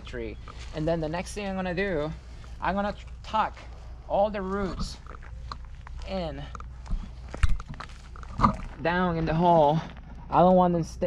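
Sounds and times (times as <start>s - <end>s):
roots and soil rustling: 0.0s - 11.0s.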